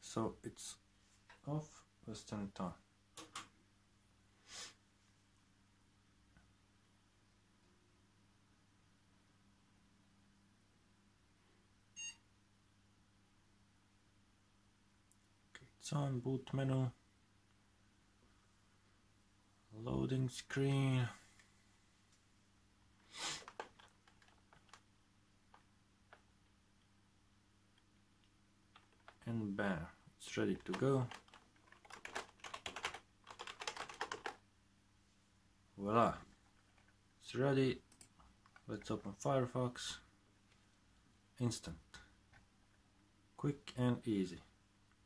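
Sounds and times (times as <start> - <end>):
short electronic beep: 12.0 - 12.2.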